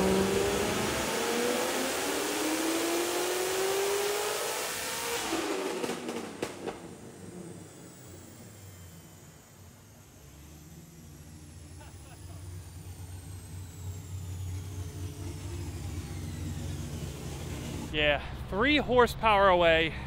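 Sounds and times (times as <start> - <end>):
dyno rollers winding down: 0.0 - 18.0
car engine at full throttle: 0.0 - 18.4
exhaust cracks: 5.2 - 8.8, 9.4 - 18.0.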